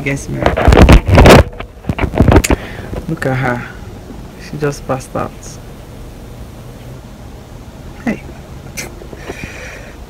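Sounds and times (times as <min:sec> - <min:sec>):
phone microphone rubbing: 0:00.2 - 0:03.1.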